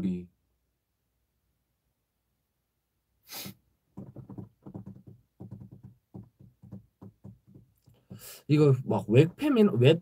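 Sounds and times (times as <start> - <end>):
soft low taps: 3.9 - 8.3.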